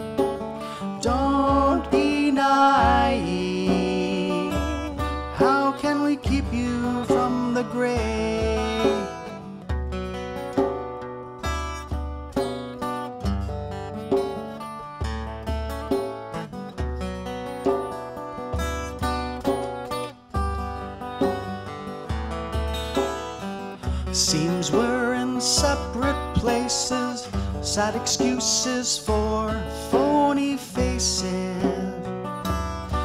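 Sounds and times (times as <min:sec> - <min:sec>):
sharp percussive hits: 0:00.0 - 0:29.2
djembe hand drum: 0:00.0 - 0:33.0
fingerstyle acoustic guitar: 0:00.0 - 0:33.0.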